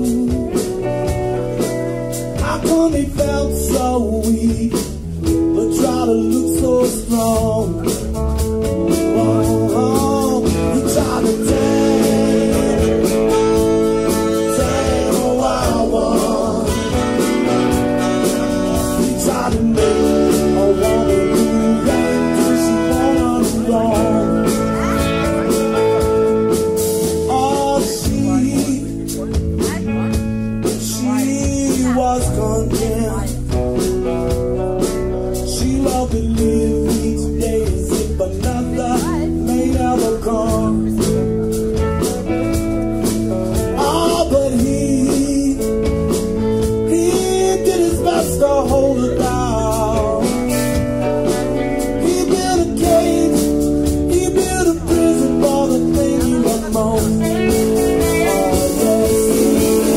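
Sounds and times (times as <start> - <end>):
man singing: 0.0 - 41.6, 43.0 - 59.9
bass: 0.0 - 59.9
blues band playing: 0.0 - 59.9
drum kit: 0.0 - 59.9
electric guitar: 0.0 - 59.9.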